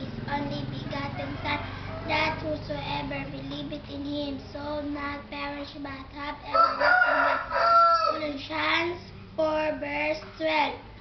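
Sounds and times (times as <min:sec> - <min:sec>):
child's voice: 0:00.0 - 0:06.8, 0:08.0 - 0:10.9
rooster crowing: 0:01.1 - 0:02.4, 0:06.5 - 0:08.3.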